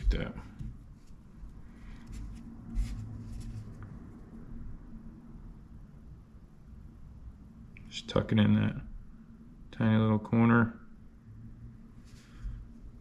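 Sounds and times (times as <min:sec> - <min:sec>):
hands handling soft plastic: 0:00.0 - 0:04.0.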